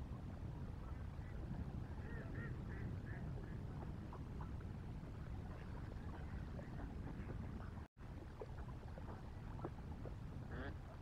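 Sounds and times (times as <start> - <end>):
faint goose honking: 2.0 - 3.2.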